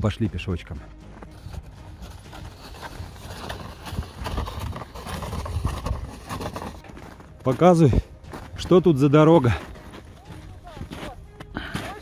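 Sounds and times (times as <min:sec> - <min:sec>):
boots crunching through snow: 0:00.0 - 0:12.0
plastic sled sliding on snow: 0:01.3 - 0:07.7.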